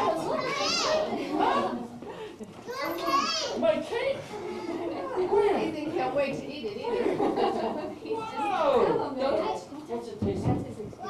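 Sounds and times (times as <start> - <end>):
voices talking excitedly: 0.0 - 2.0, 2.7 - 10.2
child's high-pitched voice: 0.3 - 1.1, 2.7 - 3.6.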